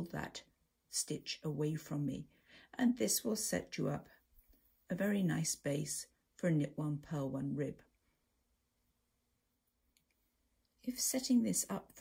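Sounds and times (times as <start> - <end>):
woman speaking: 0.0 - 4.2, 4.9 - 7.9, 10.8 - 12.0.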